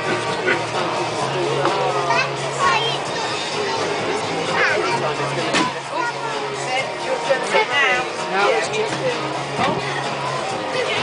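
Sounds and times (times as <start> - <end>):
children chattering and calling out: 0.0 - 11.0
faint background music: 0.0 - 11.0.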